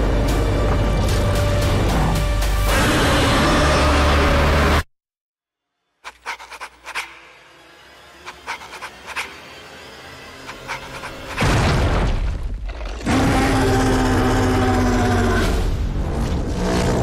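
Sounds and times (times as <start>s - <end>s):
creature roar: 12.7s - 15.7s.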